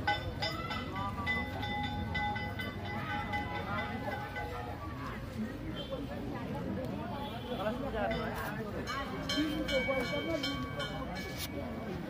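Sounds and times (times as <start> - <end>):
metal bell ringing: 0.0 - 4.8, 8.1 - 12.0
crowd chatter: 0.0 - 12.0.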